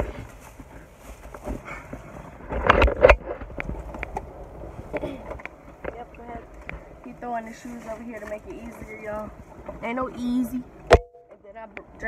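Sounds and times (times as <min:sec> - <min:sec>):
rustling: 0:00.0 - 0:09.3.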